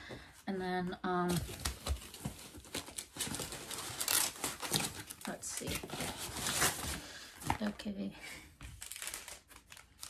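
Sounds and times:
plastic packaging crinkling: 1.4 - 7.8, 8.8 - 10.0.

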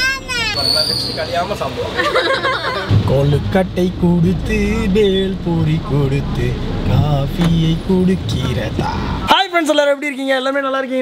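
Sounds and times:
engine and road rumble: 0.0 - 9.4
people talking: 0.0 - 11.0.

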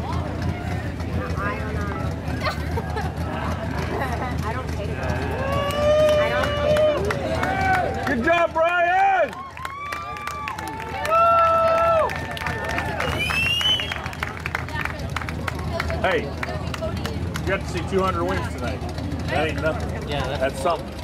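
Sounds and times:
crowd murmur: 0.0 - 21.0
low background rumble: 0.0 - 21.0.

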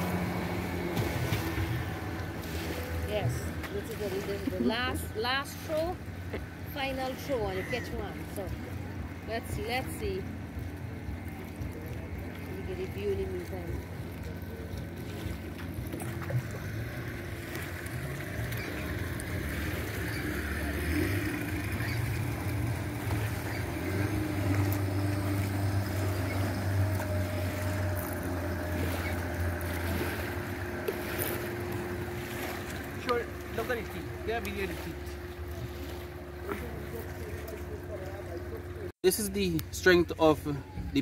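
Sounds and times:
motorboat engine rumbling: 0.0 - 41.0.

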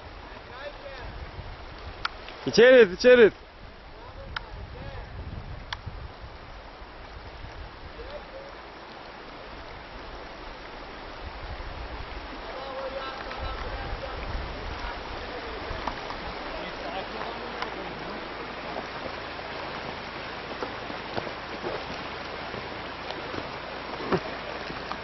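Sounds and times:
stream running over stones: 0.0 - 25.0.

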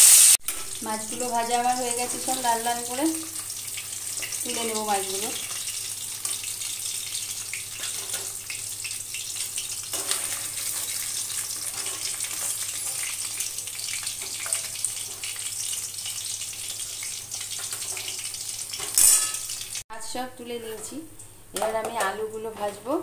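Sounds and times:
fish sizzling in hot oil: 0.0 - 19.8.

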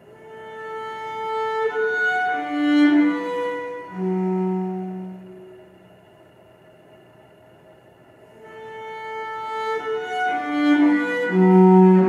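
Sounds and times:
cello bowed low note: 0.1 - 5.9, 8.4 - 12.0.

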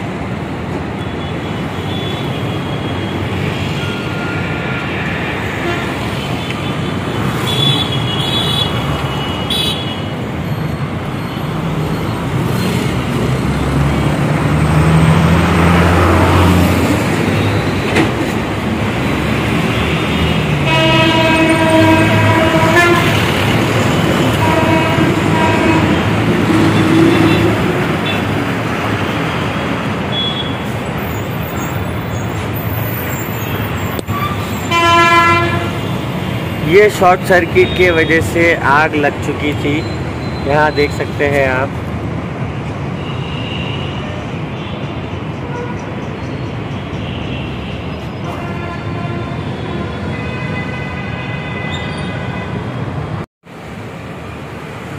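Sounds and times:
passing vehicles: 0.0 - 54.9
vehicle horns honking: 1.0 - 10.1, 19.6 - 28.4, 30.1 - 30.7, 33.4 - 36.8, 47.0 - 52.8.

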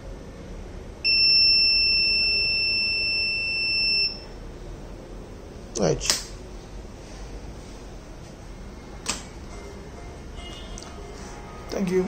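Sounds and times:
high-pitched buzzer beep: 1.1 - 4.3.

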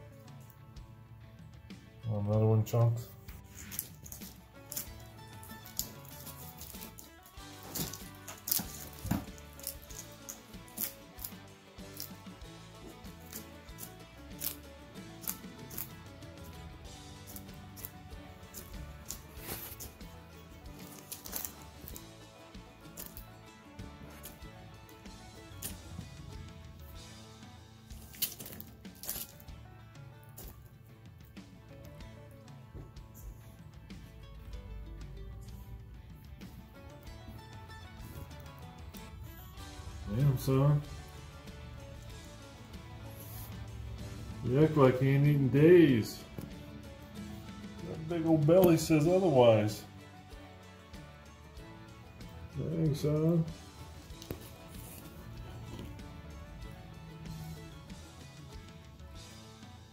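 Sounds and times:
background guitar music: 0.0 - 59.9
lizard chewing crunching clicks: 3.6 - 26.4, 27.9 - 29.5.

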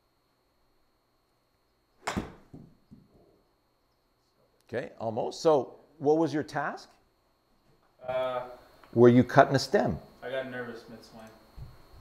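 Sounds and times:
golf club striking ball: 2.0 - 2.7.

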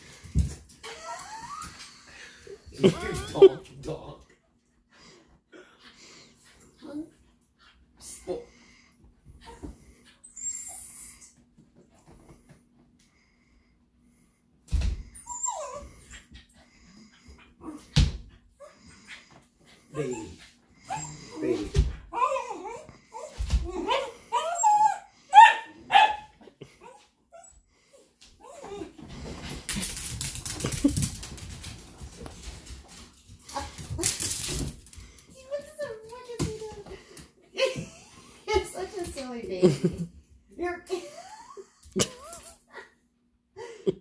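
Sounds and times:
dog whining: 0.8 - 2.0, 15.1 - 16.4, 20.0 - 21.5, 22.1 - 27.6
dogs scuffling: 28.6 - 37.3.

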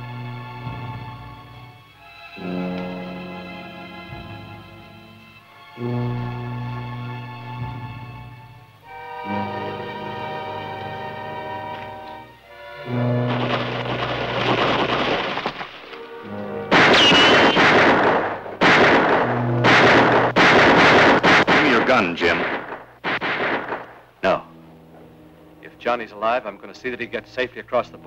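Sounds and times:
dramatic orchestral music: 0.0 - 28.0
loud crashing bursts: 12.8 - 24.2.

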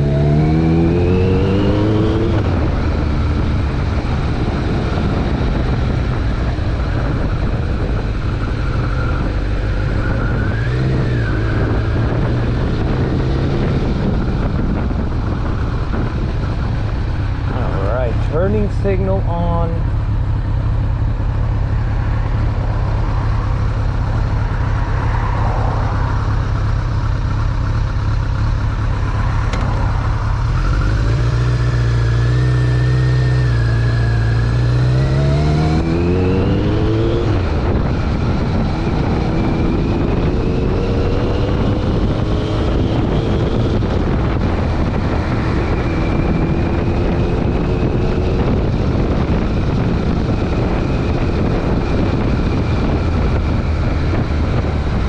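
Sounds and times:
motorcycle engine idling and accelerating: 0.0 - 55.0.

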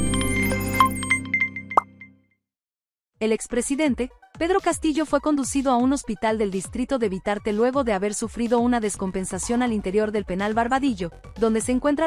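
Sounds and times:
jingle music: 0.0 - 1.9
rising pop sound effect: 1.7 - 2.0.

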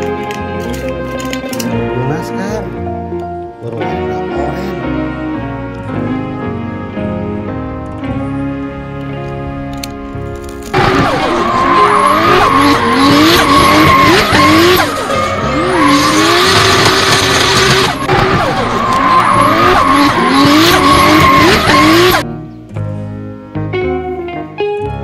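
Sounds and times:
soft background music: 0.0 - 16.4, 19.2 - 25.0
race car engine revving: 9.0 - 22.2
tyres squealing: 10.7 - 22.2.

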